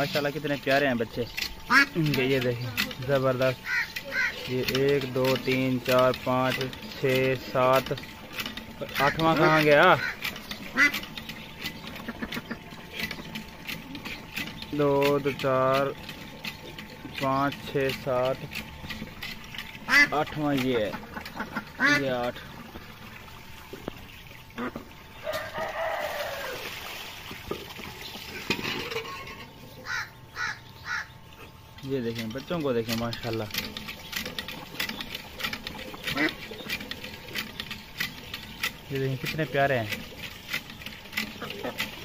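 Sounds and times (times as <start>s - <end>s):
adult duck calling: 1.6s - 2.0s, 3.6s - 4.5s, 9.0s - 11.0s, 19.8s - 22.1s, 29.8s - 31.2s, 36.0s - 36.6s
ducklings peeping: 3.6s - 4.7s, 9.0s - 15.1s, 29.5s - 31.7s, 33.9s - 40.4s.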